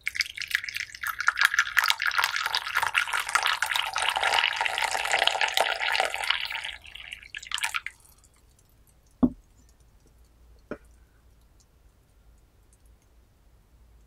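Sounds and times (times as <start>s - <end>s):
tea pouring into cup: 0.0s - 8.5s
dripping: 0.0s - 11.7s.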